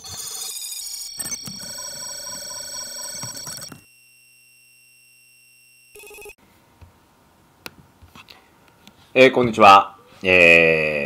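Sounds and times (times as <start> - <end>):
ringtone-like beeps: 0.0 - 6.4
steady held tone: 3.1 - 6.4.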